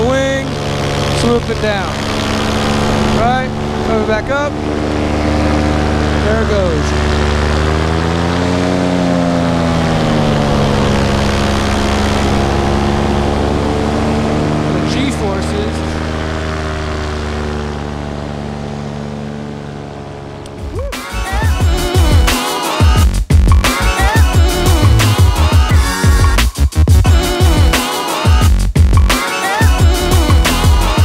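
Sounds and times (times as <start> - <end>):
paramotor engine running: 0.0 - 31.0.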